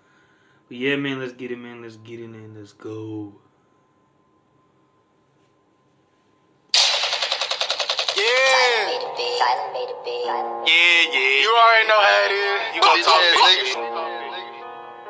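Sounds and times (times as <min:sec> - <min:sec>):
machine gun fire sound effect: 0:06.8 - 0:09.4
voice over music: 0:08.2 - 0:14.8.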